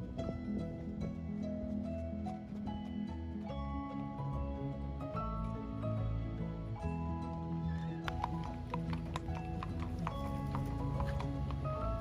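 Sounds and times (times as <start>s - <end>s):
hooves clip-clopping on brick: 0.0s - 4.3s, 7.2s - 12.0s
background music: 0.0s - 12.0s.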